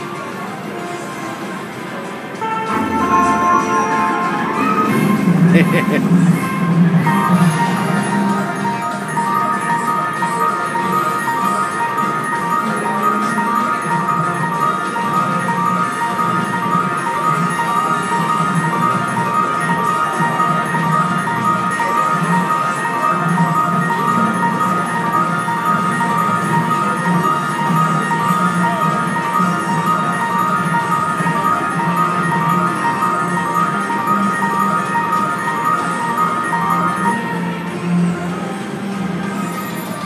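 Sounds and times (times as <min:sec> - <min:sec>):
slot machine chiming melody: 0:02.4 - 0:38.0.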